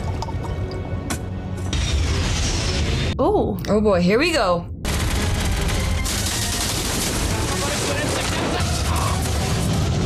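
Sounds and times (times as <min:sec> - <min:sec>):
film music score: 0:00.0 - 0:10.0
explosion blast and rumble: 0:04.7 - 0:10.0
rapid crackling: 0:04.9 - 0:10.0.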